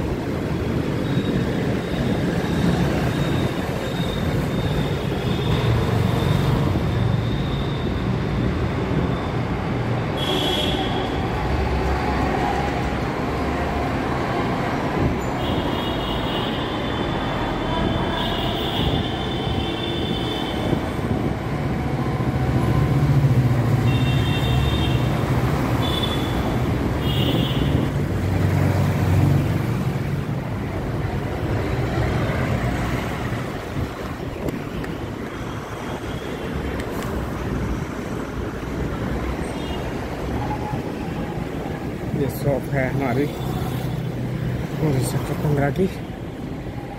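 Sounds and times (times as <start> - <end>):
road traffic passing: 0.0 - 46.9.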